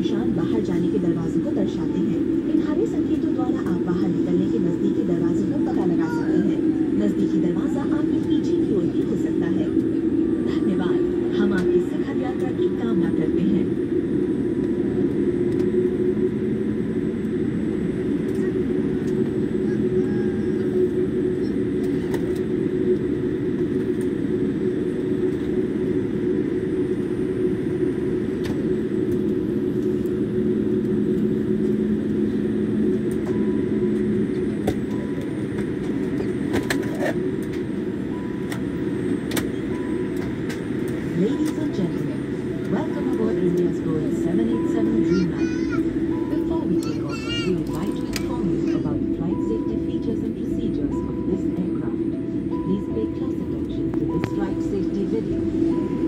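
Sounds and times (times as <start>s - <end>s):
jet engine hum from cabin: 0.0s - 56.0s
high voice: 44.7s - 50.0s.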